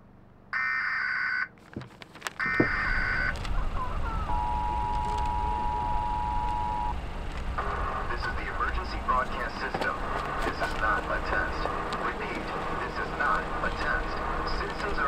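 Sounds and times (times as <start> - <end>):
screeching data bursts: 2.4 - 3.4, 4.1 - 7.0
two-tone attention signal: 4.2 - 7.0.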